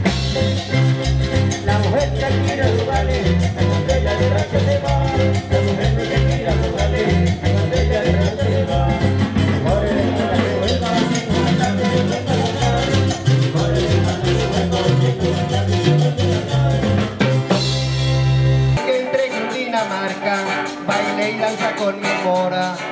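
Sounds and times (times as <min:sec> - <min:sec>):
electric bass line: 0:00.0 - 0:18.9
drum kit beat: 0:00.0 - 0:22.9
strummed acoustic guitars: 0:00.0 - 0:22.9.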